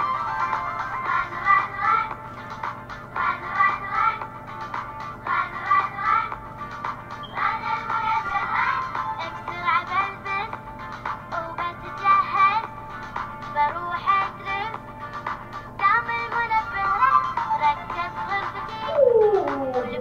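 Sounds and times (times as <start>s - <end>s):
high-pitched singing voice: 17.8s - 20.0s.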